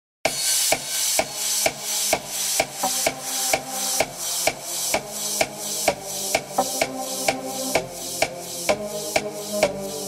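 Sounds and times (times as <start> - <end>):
hissy high wash: 0.3 - 6.4
electronic percussion beat: 0.3 - 10.0.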